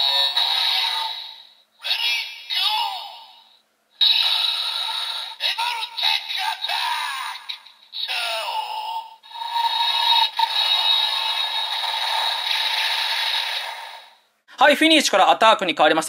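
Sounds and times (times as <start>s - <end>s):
tinny toy sound effects: 0.0s - 14.2s.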